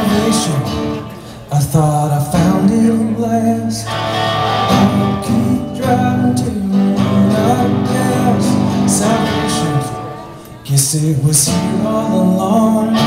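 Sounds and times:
folk-rock band playing: 0:00.0 - 0:13.0
man singing: 0:00.0 - 0:13.0.

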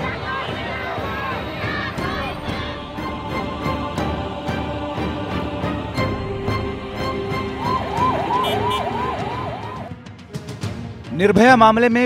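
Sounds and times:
ambulance siren yelping: 0:07.0 - 0:10.0.

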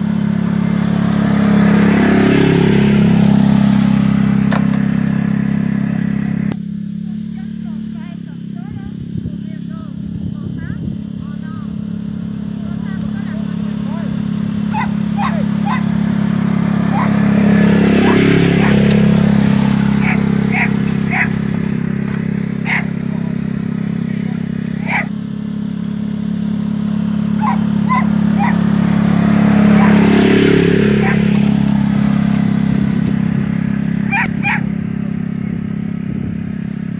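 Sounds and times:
utility vehicle engine running: 0:00.0 - 0:36.9.

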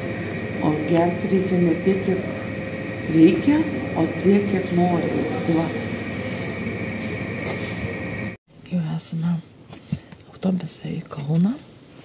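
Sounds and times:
mechanical hum with high whine: 0:00.0 - 0:12.0.

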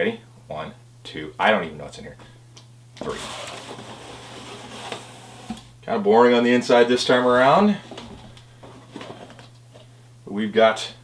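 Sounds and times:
cardboard box lid scraping: 0:03.0 - 0:05.7.

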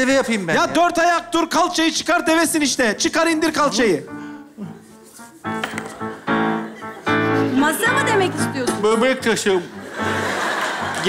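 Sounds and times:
held keyboard chords: 0:04.1 - 0:11.0.

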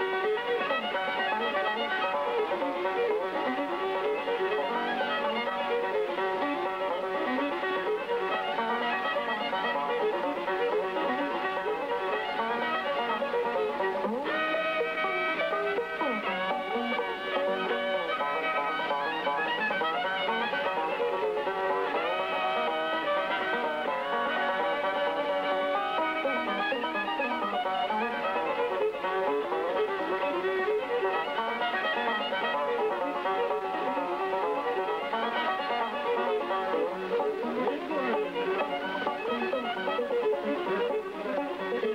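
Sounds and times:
banjo picking: 0:00.0 - 0:41.9
bowed fiddle melody: 0:00.0 - 0:41.9.

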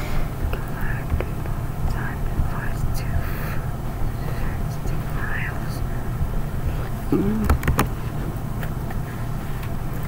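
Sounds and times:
low rumble of room noise: 0:00.0 - 0:10.0.

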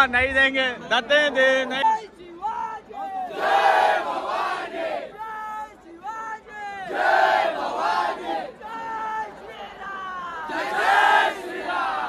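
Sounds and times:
crowd of men shouting: 0:02.4 - 0:12.0.

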